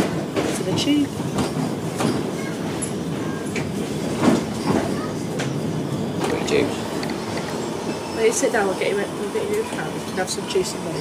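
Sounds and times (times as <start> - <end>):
knocks and rattles from rails: 0.0 - 7.6
tram rumble: 0.0 - 11.0.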